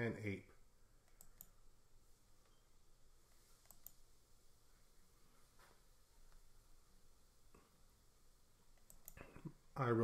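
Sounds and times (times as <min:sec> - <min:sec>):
faint computer clicks: 0:01.0 - 0:01.6, 0:03.6 - 0:04.0, 0:08.8 - 0:09.5.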